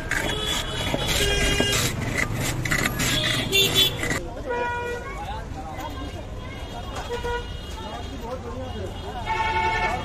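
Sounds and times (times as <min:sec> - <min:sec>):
ice scraped over blade: 0:00.0 - 0:04.2
vehicle horns honking: 0:00.1 - 0:02.0, 0:03.0 - 0:05.0, 0:06.6 - 0:10.0.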